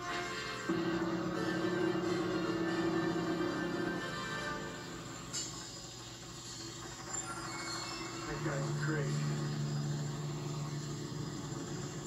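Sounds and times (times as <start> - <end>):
film score music: 0.0 - 12.0
boat engines droning: 8.1 - 12.0.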